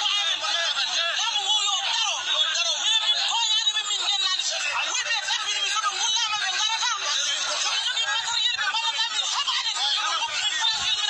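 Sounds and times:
men talking and calling out: 0.0 - 11.0.

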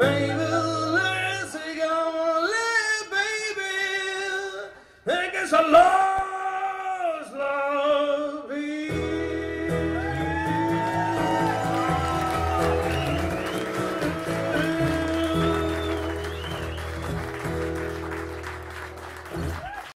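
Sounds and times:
electric guitar playing: 9.2 - 19.6.

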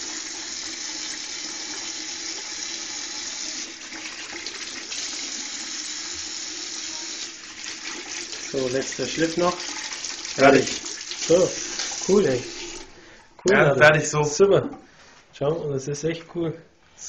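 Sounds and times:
water running from tap into sink: 0.0 - 12.9.

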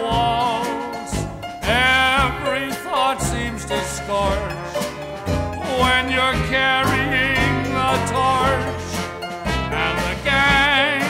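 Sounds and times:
banjo: 0.0 - 11.0
clarinet: 0.0 - 11.0
rhythm section: 0.0 - 11.0
tuba bass: 0.0 - 11.0
trombone: 0.1 - 11.0
trumpet: 4.3 - 11.0.

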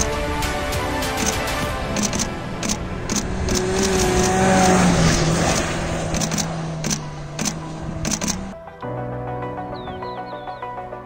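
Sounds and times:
rally car engine passing: 1.8 - 8.6.

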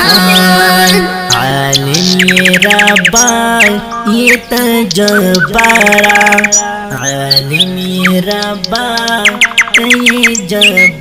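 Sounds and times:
bird chirp sound effects: 0.0 - 11.0.

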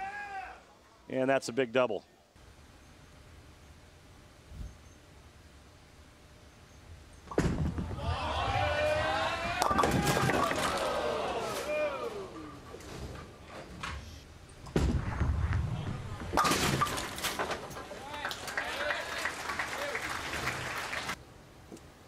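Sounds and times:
bowling ball crashing into pins: 7.3 - 11.7, 14.7 - 18.0
bowling ball rumbling down lane: 7.3 - 13.2, 14.7 - 18.6
crowd reacting: 7.8 - 12.8, 17.7 - 21.2.

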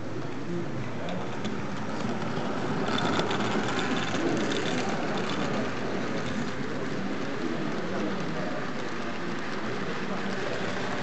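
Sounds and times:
model train wheels rumbling: 0.0 - 11.0.

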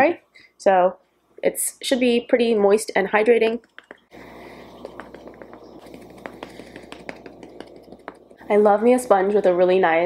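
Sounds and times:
low room hum: 0.0 - 10.0
makeup sponge patting skin: 3.6 - 9.4.

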